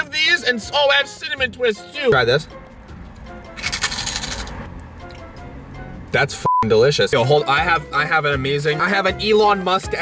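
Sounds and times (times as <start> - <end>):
faint background music: 0.0 - 10.0
crunchy chewing: 3.6 - 4.7.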